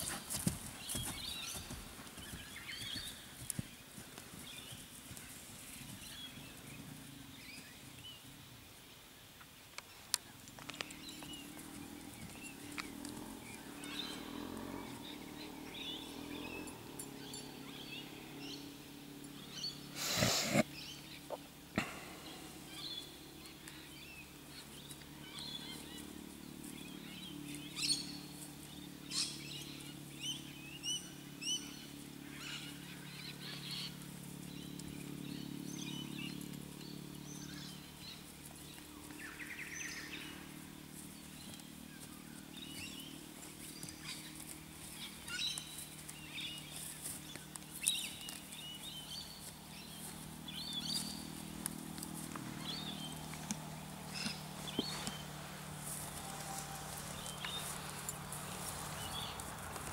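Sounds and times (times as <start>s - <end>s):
birds chirping and calling: 9.8s - 59.9s
steady low hum: 9.8s - 59.9s.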